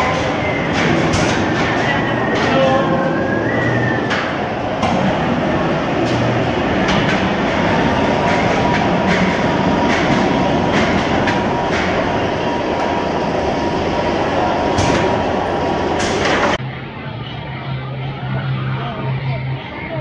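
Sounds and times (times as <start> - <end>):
roller coaster train rumbling: 0.0 - 20.0.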